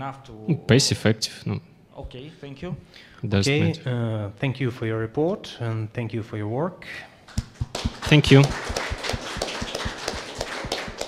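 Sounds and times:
audience applauding: 7.3 - 11.0.

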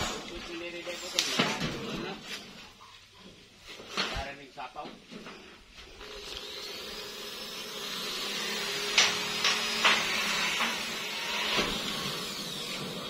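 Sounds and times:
small motor humming: 5.9 - 13.0.

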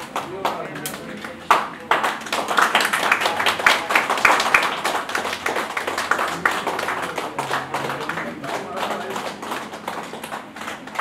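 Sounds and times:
scattered hand clapping: 0.0 - 11.0.

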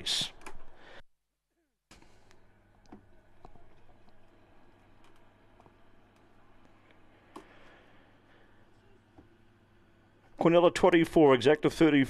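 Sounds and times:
commentator's voice: 10.4 - 12.0.

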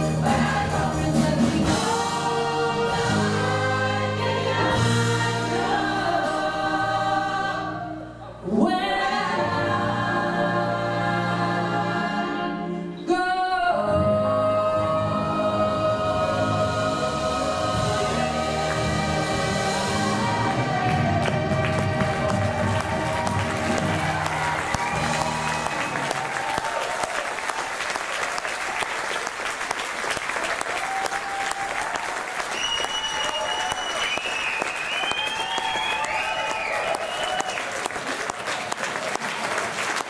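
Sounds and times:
choir and band holding chord: 0.0 - 13.0, 13.8 - 26.1
audience applause: 19.8 - 40.0.

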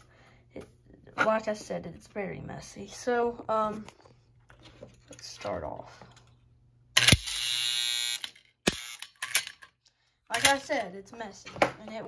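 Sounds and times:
electric coil buzzing: 7.0 - 9.1.

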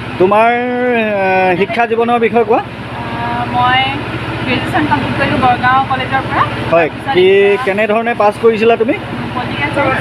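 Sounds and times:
low pulsing mechanical hum: 0.0 - 10.0
voices talking: 0.1 - 10.0.

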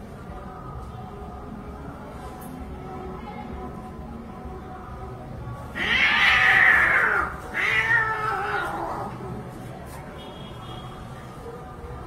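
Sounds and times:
cats yowling: 5.7 - 9.2.

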